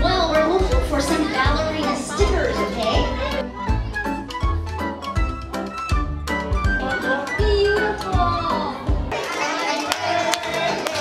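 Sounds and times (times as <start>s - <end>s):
children chattering and calling out: 0.0s - 4.2s, 7.6s - 10.3s.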